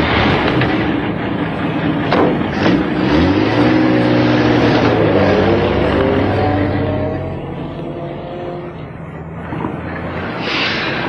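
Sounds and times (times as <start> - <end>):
car engine pulling away: 0.0 - 11.0.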